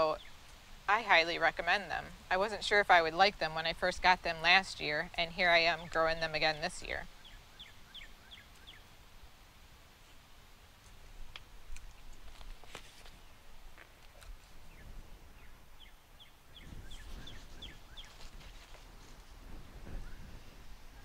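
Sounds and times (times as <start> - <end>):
outdoor background noise: 0.0 - 21.0
bird chirping: 4.8 - 9.0, 14.6 - 18.3.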